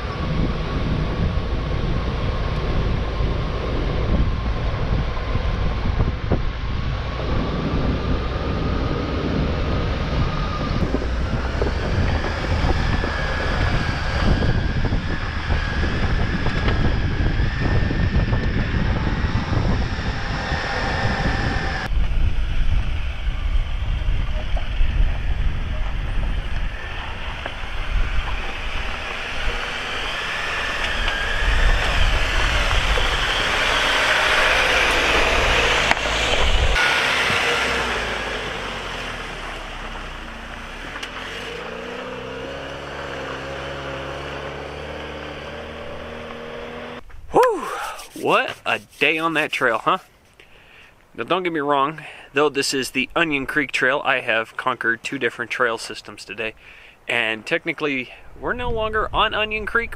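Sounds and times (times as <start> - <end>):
engine running under load: 0.0 - 47.1.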